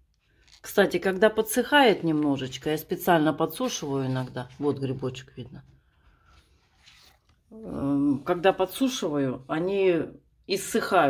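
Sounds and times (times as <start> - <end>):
woman speaking: 0.6 - 5.8, 7.5 - 11.0.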